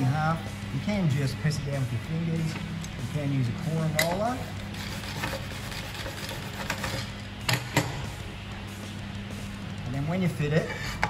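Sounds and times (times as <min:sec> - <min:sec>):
quiet background music: 0:00.0 - 0:11.0
sanding pad creasing: 0:04.7 - 0:07.1.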